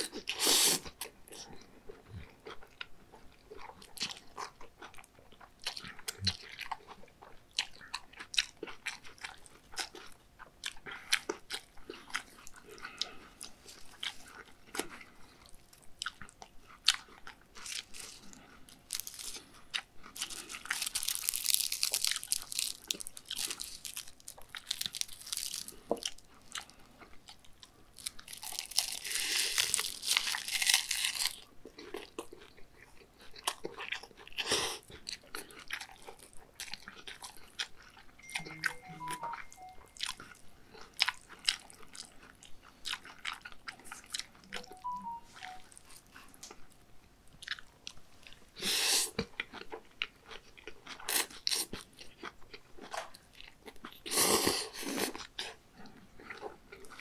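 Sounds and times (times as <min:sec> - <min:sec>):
wet chewing with crunching: 0:00.0 - 0:57.0.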